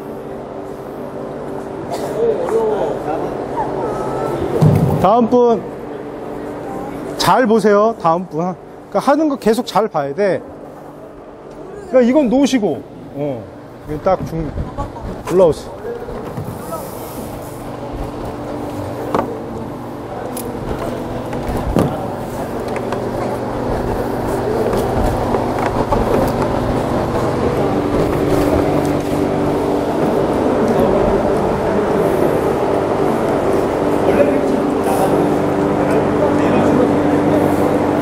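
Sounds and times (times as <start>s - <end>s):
people chattering: 0.0s - 38.0s
steady low hum: 0.0s - 38.0s.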